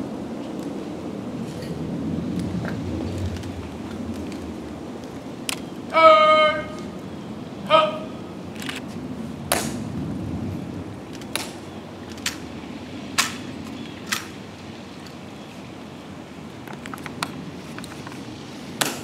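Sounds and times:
low steady background noise: 0.0 - 19.0.

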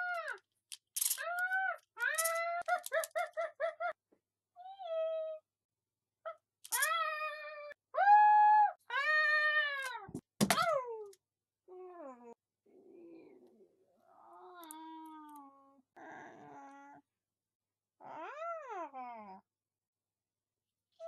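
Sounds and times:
toy squeals and chatter: 1.1 - 4.0.

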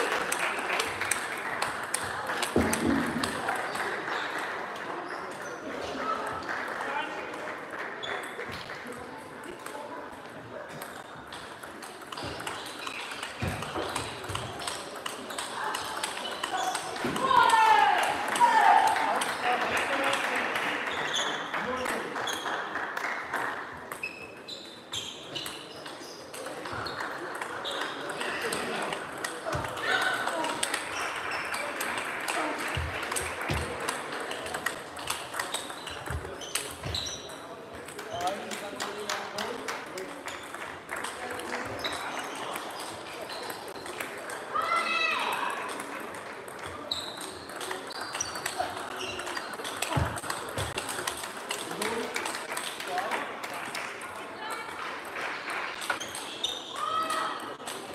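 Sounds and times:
hubbub of voices: 0.0 - 57.9.

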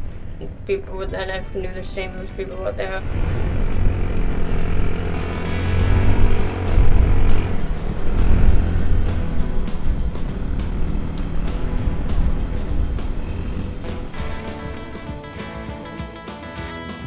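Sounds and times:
off-road vehicle engine rumble: 0.0 - 16.2
background music: 0.0 - 17.0.

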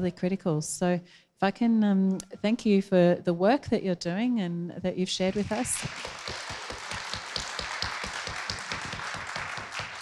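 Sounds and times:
audience applauding: 5.4 - 10.0.

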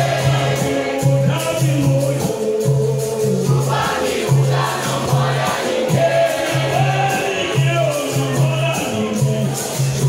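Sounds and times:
chorus singing: 0.0 - 10.0
percussion strokes: 0.0 - 10.0.

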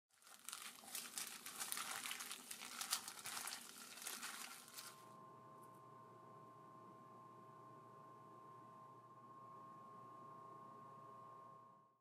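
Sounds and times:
irregular crinkling and crackling: 0.1 - 5.0
faint steady hum with thin tone: 0.2 - 12.0.

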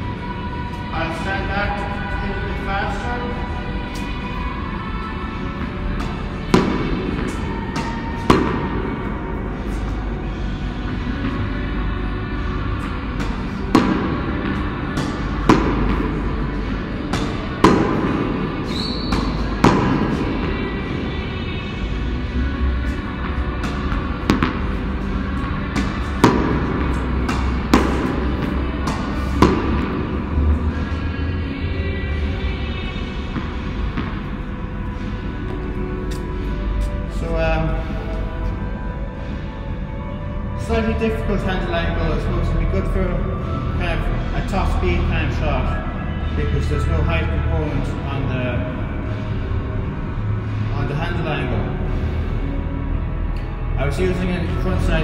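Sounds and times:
background music: 0.0 - 55.0
racket striking ball: 13.1 - 16.3, 17.1 - 20.4, 23.2 - 30.3
tennis ball hitting wall: 13.2 - 16.2, 23.6 - 24.8, 25.7 - 30.2.

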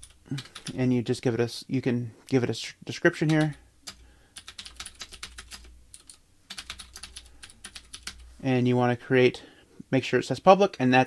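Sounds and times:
computer keyboard typing: 0.0 - 0.8, 3.3 - 8.2.

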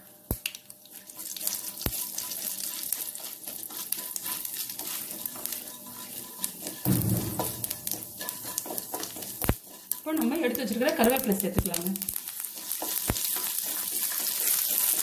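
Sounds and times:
lentils sizzling in hot oil: 0.0 - 15.0
wooden spatula stirring: 0.8 - 15.0
low rumble: 6.9 - 8.1.

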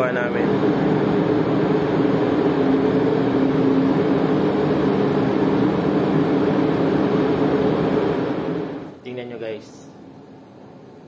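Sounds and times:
ship machinery drone: 0.0 - 9.0.

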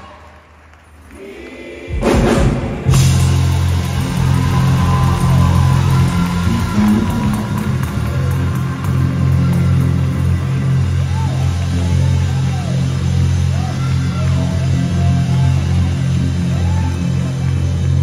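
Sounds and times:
gospel choir and band: 0.0 - 13.2.

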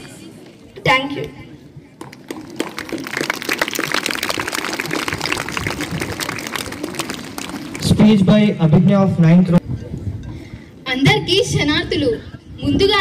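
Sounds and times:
children clapping: 2.1 - 8.0.

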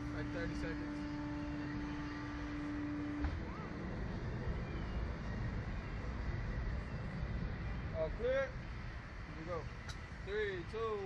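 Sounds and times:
low outdoor rumble: 0.0 - 11.0
ride machine hum: 0.0 - 11.0.

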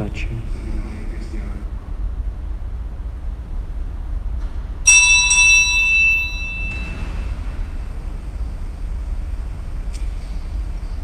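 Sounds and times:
low room hum: 0.0 - 11.0
bell ringing: 4.9 - 7.4.

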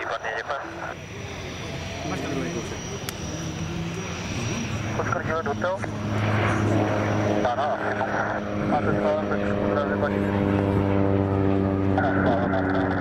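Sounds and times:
low propeller drone: 0.0 - 13.0
turboprop engine at takeoff: 0.0 - 13.0.

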